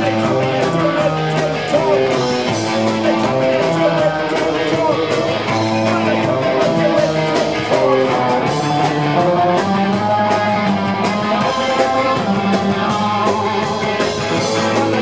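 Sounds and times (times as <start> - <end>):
live ska band playing: 0.0 - 15.0.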